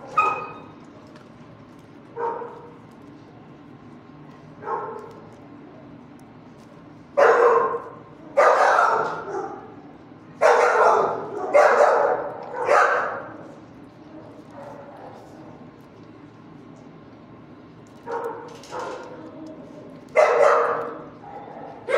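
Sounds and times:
dogs barking: 0.0s - 0.7s, 2.2s - 2.7s, 4.6s - 5.2s, 7.2s - 9.8s, 10.4s - 13.4s, 18.0s - 19.1s, 20.1s - 21.9s.

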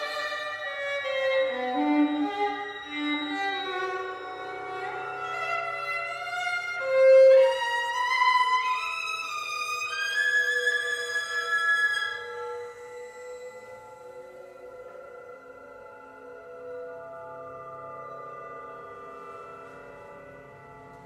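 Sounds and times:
violin with electronics: 0.0s - 14.9s.

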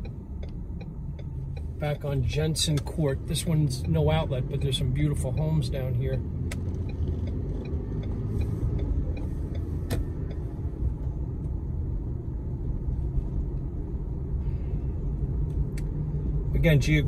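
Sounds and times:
car engine and tyre rumble: 0.0s - 17.0s.

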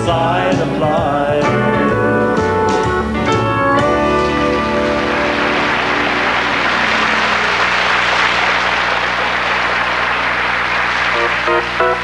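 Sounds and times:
band holding low notes: 0.0s - 12.0s
guitar run of notes: 1.5s - 10.2s
audience applauding: 3.8s - 12.0s.

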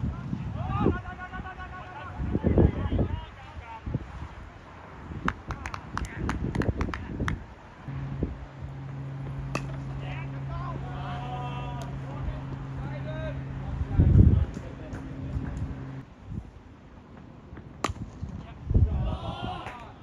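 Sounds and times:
distant voices calling: 4.5s - 16.0s
steady low hum: 7.1s - 18.3s
bat hitting ball: 8.8s - 10.4s, 17.6s - 18.4s.

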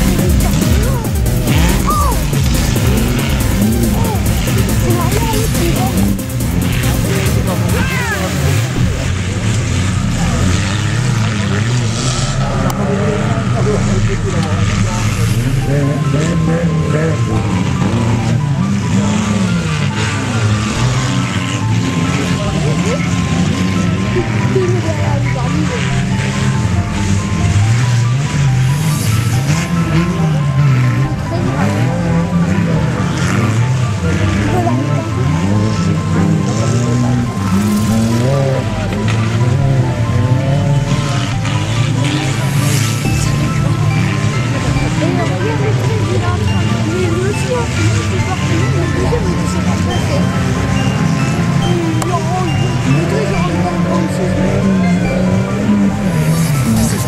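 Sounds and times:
stock-car engines revving: 0.0s - 57.0s.

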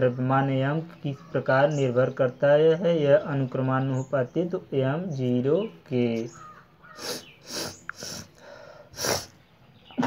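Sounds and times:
noisy breaths into microphone: 7.0s - 9.5s.

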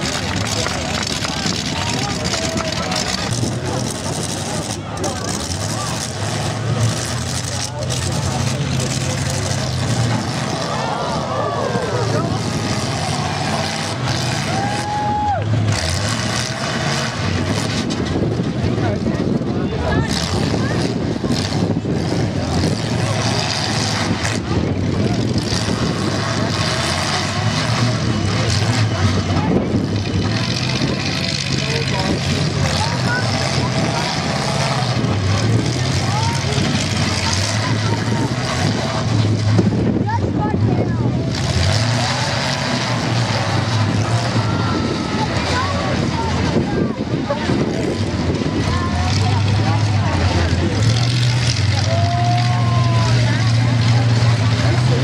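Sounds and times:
crowd voices and shouts: 0.0s - 55.0s
truck engines running: 0.0s - 55.0s.

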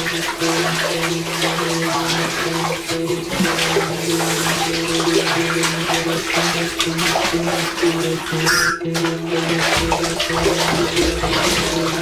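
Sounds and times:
bath water sloshing and splashing: 0.0s - 12.0s.

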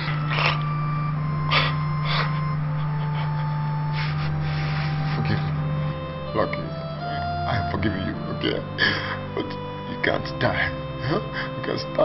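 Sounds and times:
background music with drone: 0.0s - 12.0s
person gasping for breath: 8.8s - 9.3s.

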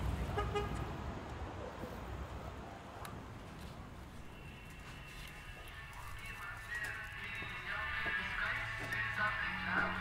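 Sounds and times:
city traffic rumble: 0.0s - 10.0s.

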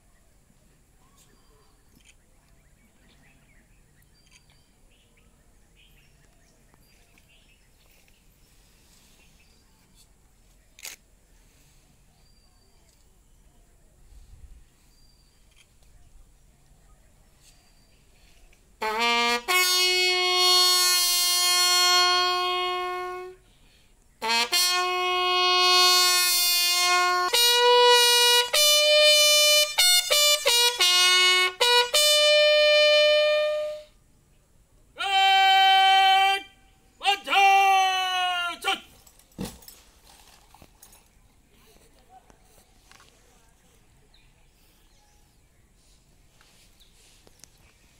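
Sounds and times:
bugle call: 18.8s - 23.4s, 24.2s - 34.0s, 35.0s - 39.0s.

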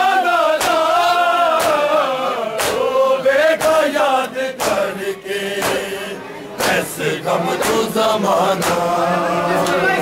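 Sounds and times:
men chanting a lament: 0.0s - 10.0s.

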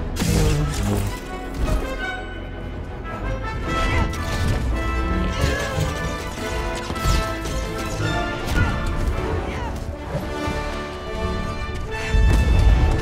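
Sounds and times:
orchestral film music: 0.0s - 13.0s.

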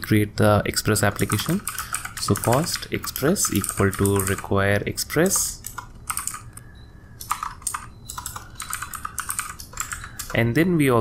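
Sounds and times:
computer keyboard typing: 0.9s - 10.4s.

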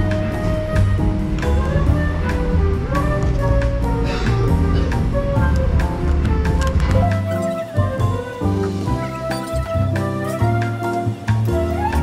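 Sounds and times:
bass line: 0.0s - 10.6s
pitched instrument notes: 0.0s - 12.0s.

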